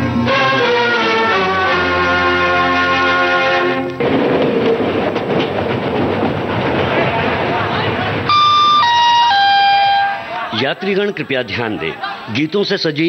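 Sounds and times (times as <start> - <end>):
train noise: 0.0 - 12.4
descending electronic chime: 8.3 - 10.3
announcer's voice: 8.3 - 13.0.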